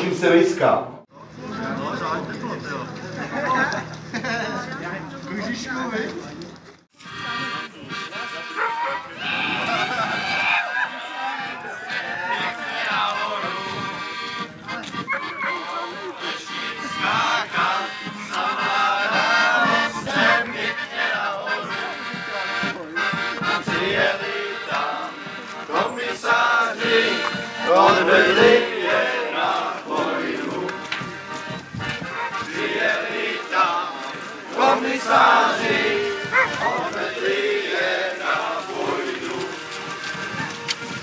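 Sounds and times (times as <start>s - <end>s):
people's voices: 0.0s - 41.0s
accordion music: 6.9s - 9.2s, 11.7s - 41.0s.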